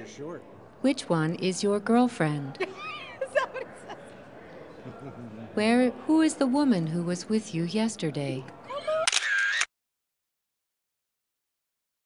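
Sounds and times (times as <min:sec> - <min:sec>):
camera shutter: 0:09.0 - 0:09.7.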